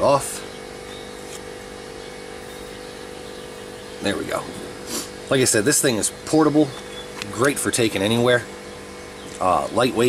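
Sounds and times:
air compressor humming and hissing: 0.0 - 10.0.

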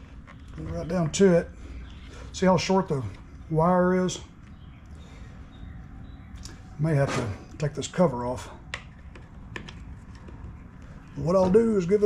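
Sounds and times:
low steady hum: 0.0 - 12.0
hands tapping plastic housing: 8.7 - 10.6.

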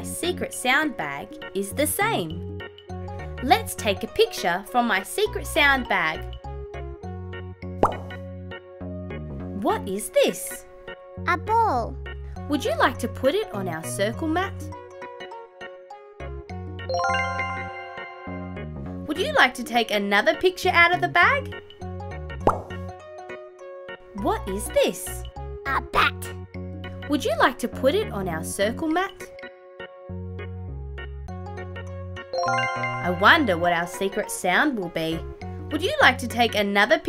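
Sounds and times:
light children's music: 0.0 - 37.0
cartoon pop sound effect: 7.8 - 8.2, 22.4 - 22.9.

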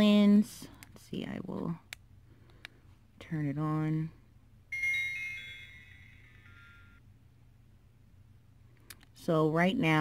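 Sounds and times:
electronic power-on chime: 4.7 - 7.0.

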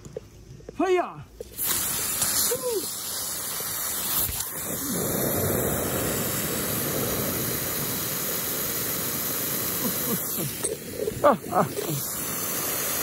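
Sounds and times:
aerosol can spraying: 1.4 - 13.0.

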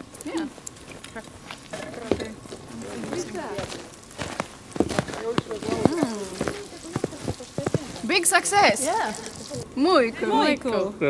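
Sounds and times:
food sizzling in a pan: 5.6 - 10.1.

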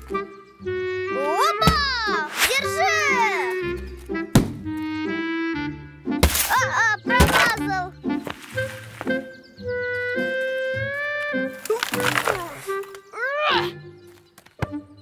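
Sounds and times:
light cartoon background music: 0.0 - 15.0
sharp thud: 4.3 - 4.7, 6.2 - 6.5
cartoon character exclamations: 13.2 - 13.8.

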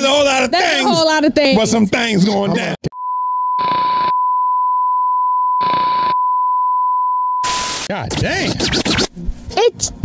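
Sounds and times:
static hiss bursts: 7.4 - 9.1.

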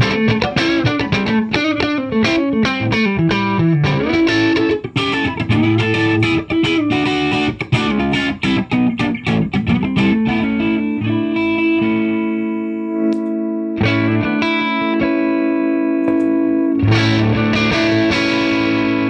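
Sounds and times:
electric guitar chord ringing: 0.0 - 19.0.

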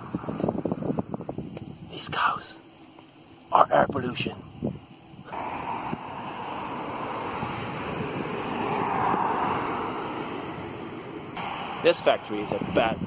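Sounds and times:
passing car tyre noise: 5.3 - 13.0.

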